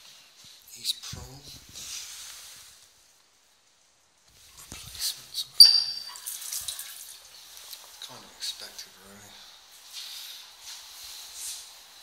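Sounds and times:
short high squeak: 5.6 - 6.2
water trickling into a basin: 5.6 - 8.1.

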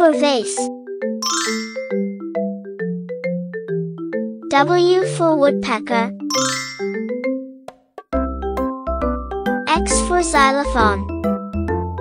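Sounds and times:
bright chime: 1.2 - 2.2, 6.3 - 7.1.

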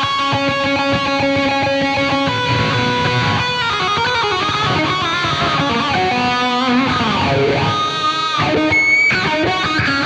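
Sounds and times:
electric guitar lick with bend: 0.0 - 10.0.

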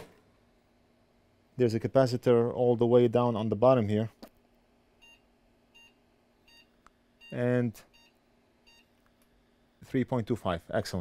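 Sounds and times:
low electrical hum: 0.0 - 11.0
man talking: 1.6 - 4.2, 7.3 - 7.9, 9.8 - 11.0.

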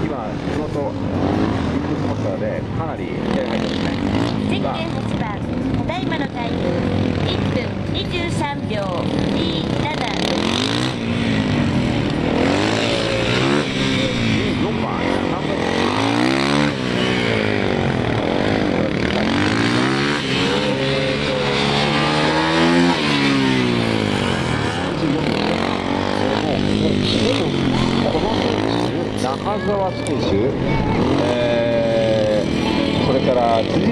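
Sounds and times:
motorcycle engine revving: 0.0 - 33.9.

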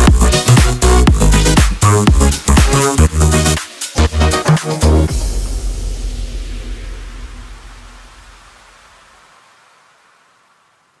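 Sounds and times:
electronic dance track: 0.0 - 8.8
low bass: 0.0 - 9.0
hiss-like noise wash: 5.1 - 11.0.

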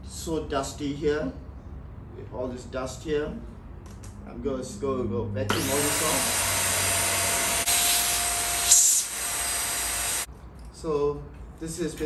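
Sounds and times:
handheld vacuum cleaner running: 5.5 - 10.3.

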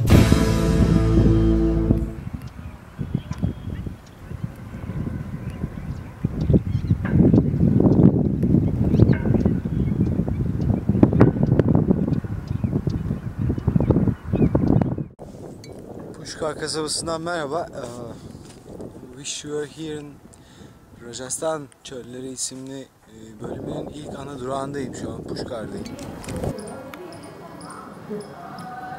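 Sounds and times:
wind buffeting microphone: 0.0 - 28.9.

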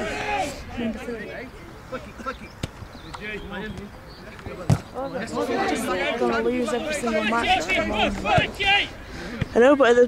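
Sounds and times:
voices talking and calling: 0.0 - 10.0.

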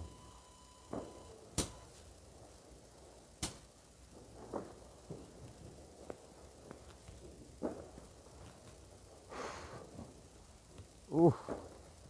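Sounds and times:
distant firecracker bangs: 0.8 - 2.6, 3.4 - 8.4, 11.3 - 12.0.

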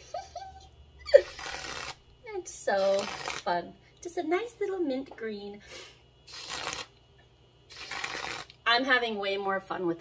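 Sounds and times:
whipped cream dispenser hissing: 1.1 - 2.0, 2.7 - 3.5, 5.7 - 7.0, 7.7 - 8.6.

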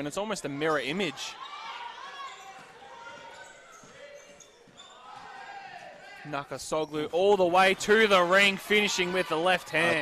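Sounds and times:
shoe squeaks: 1.3 - 5.8.

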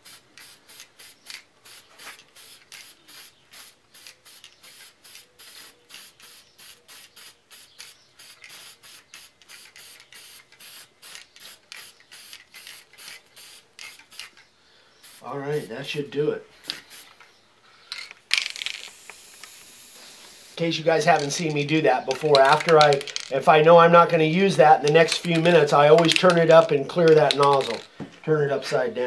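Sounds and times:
aerosol can spraying: 0.0 - 14.4, 15.0 - 15.3, 16.6 - 17.2, 18.4 - 21.4.

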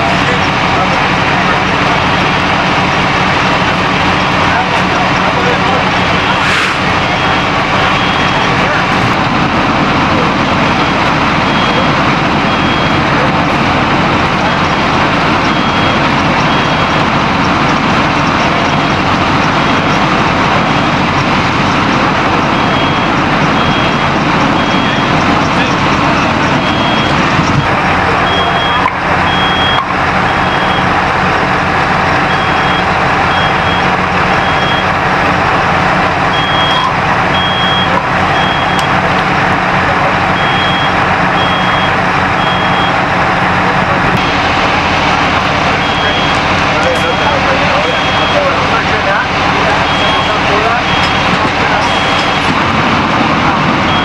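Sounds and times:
fire engines running: 0.0 - 54.0
high electronic beeps: 4.1 - 8.9, 10.7 - 13.2, 14.4 - 20.0, 21.6 - 31.0, 32.2 - 35.1, 36.3 - 39.1, 40.1 - 43.0, 45.7 - 52.6.

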